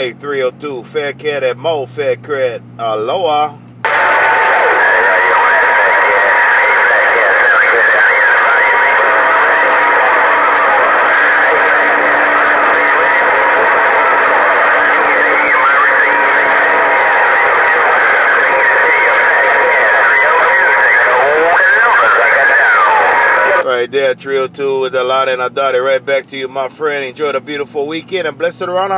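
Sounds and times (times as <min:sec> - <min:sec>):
radio static hiss: 0:03.8 - 0:23.8
faint garbled radio voices: 0:03.8 - 0:28.9.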